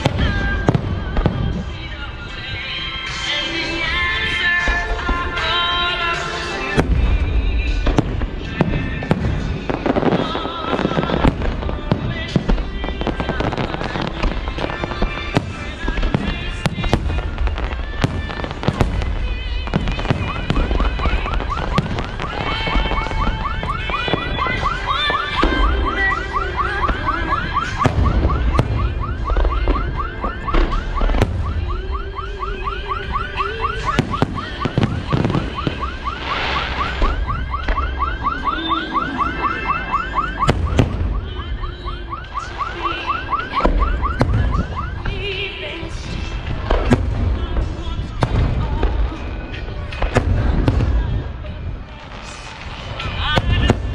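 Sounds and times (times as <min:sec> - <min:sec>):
fireworks bursting: 0:00.0 - 0:53.9
music: 0:00.0 - 0:53.9.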